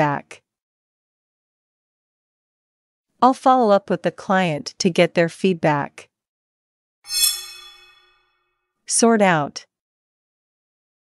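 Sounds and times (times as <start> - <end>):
bell-like chime: 7.1 - 8.2.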